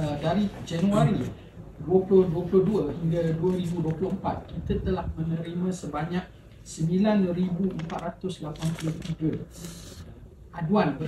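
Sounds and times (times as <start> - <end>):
man speaking: 0.0 - 9.6.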